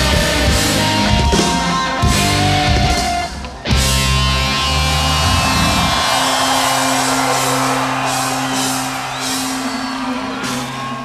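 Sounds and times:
electric guitar feedback: 0.0s - 11.0s
heavy rock band: 0.0s - 11.0s.

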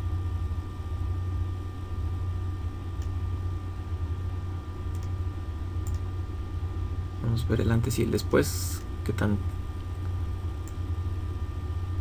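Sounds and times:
low background hum: 0.0s - 12.0s
faint click: 4.9s - 5.2s, 5.8s - 6.0s.

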